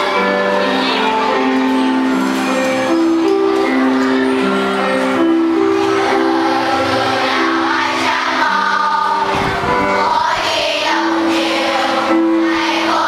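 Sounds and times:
children singing in unison: 0.0s - 13.0s
instrumental accompaniment: 0.0s - 13.0s.

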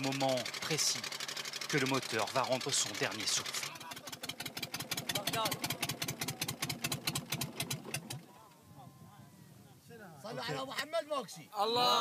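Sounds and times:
diesel boat engine chugging: 0.0s - 8.4s
voices: 1.7s - 4.4s, 8.2s - 12.0s.

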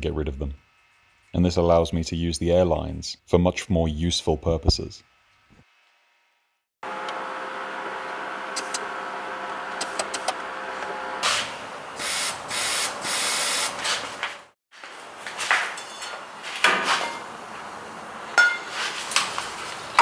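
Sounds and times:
air blasts: 11.2s - 14.1s.

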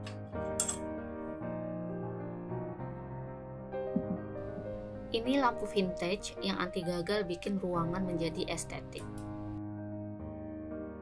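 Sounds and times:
soft piano music: 0.0s - 11.0s
metal lantern clinking on shelf: 0.6s - 0.8s.

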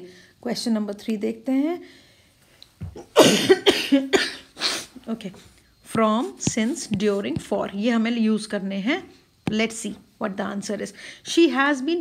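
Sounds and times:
woman coughing: 3.0s - 5.0s.

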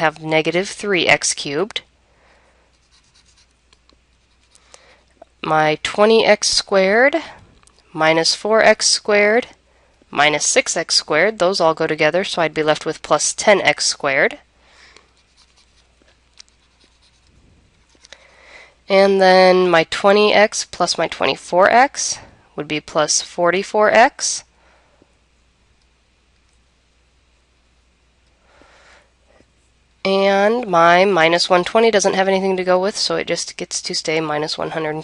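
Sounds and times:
low mains hum: 0.0s - 35.0s
stylus scratching on tablet screen: 2.7s - 4.6s, 15.1s - 18.2s.

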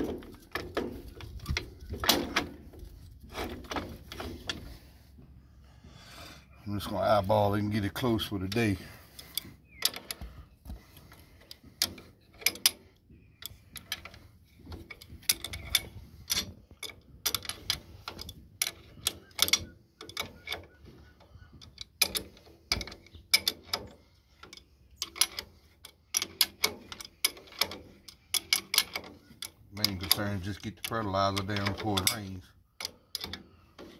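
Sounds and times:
wrench clicking on metal bolts: 11.2s - 20.9s, 21.6s - 33.9s.

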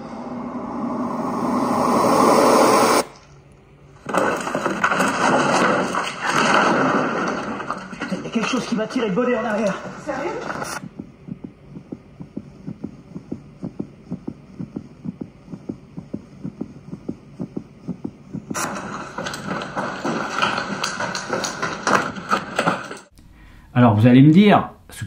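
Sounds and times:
running footsteps on hard floor: 9.6s - 23.1s.

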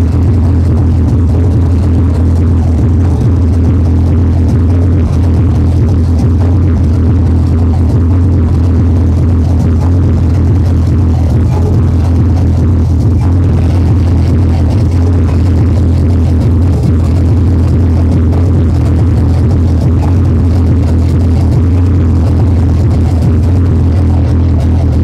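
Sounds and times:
hardcore techno with heavy bass: 0.0s - 25.0s.

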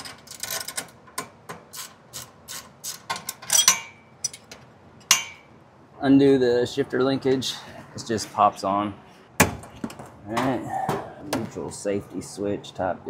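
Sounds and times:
wrench clicking and clinking on metal: 0.0s - 5.5s.

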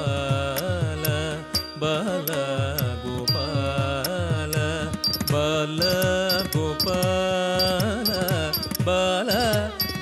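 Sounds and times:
person singing melody: 0.0s - 10.0s
small cymbal clicks: 5.0s - 10.0s.

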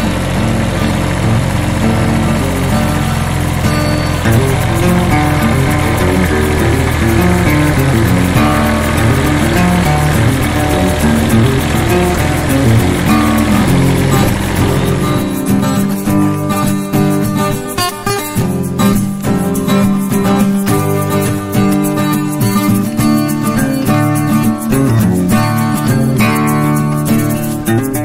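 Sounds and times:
background music melody: 0.0s - 28.0s
tractor engine running: 0.0s - 28.0s.

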